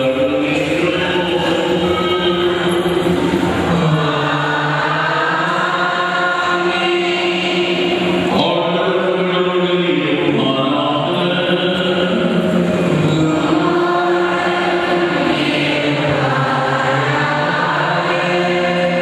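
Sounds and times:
slow sung chant: 0:00.0 - 0:19.0.

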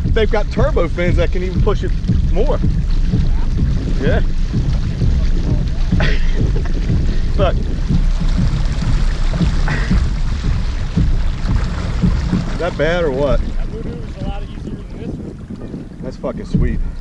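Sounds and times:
water washing along hull: 0:00.0 - 0:17.0
wind buffeting microphone: 0:00.0 - 0:17.0.

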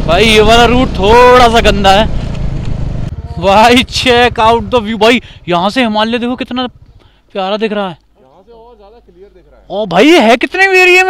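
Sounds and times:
man's voice: 0:00.0 - 0:02.1, 0:03.2 - 0:06.7, 0:07.4 - 0:11.0
wind and tyre noise: 0:00.0 - 0:07.1
motorcycle engine: 0:00.0 - 0:07.4.

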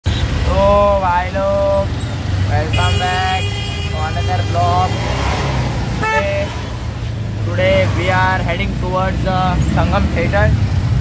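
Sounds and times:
people talking: 0:00.4 - 0:01.9, 0:02.5 - 0:05.0, 0:06.0 - 0:06.6, 0:07.5 - 0:10.6
vehicle horn toot: 0:02.7 - 0:05.1, 0:06.0 - 0:06.5.

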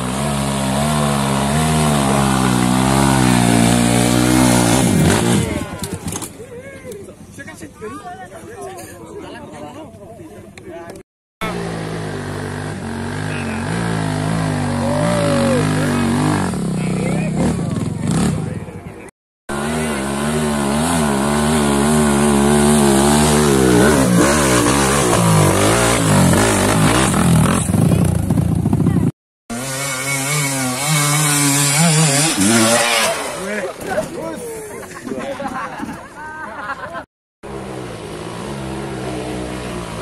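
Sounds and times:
motorcycle engines revving: 0:00.0 - 0:07.9, 0:11.4 - 0:40.0
crowd voices: 0:05.0 - 0:11.7, 0:13.1 - 0:19.1, 0:32.4 - 0:37.0.

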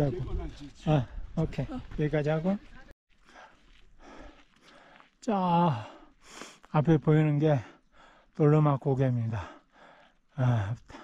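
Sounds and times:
footsteps on gravel: 0:01.8 - 0:05.2.

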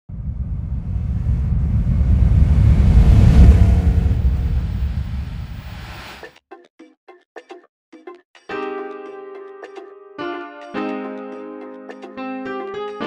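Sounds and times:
deep rumble: 0:00.0 - 0:06.2.

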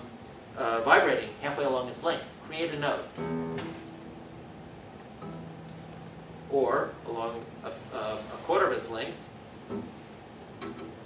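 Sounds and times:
acoustic guitar harmonics ringing: 0:00.8 - 0:11.0.

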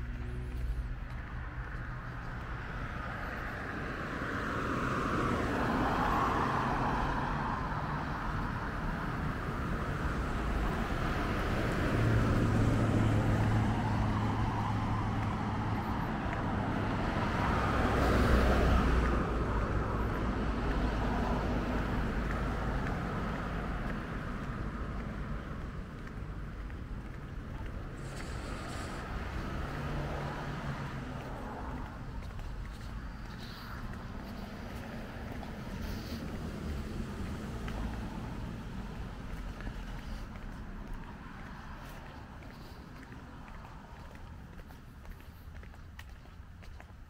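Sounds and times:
cars passing on a street: 0:00.0 - 0:47.0
low traffic rumble: 0:00.0 - 0:47.0.

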